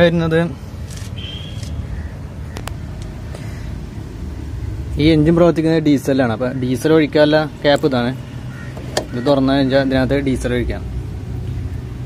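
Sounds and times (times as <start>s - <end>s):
low mechanical rumble: 0.5s - 12.0s.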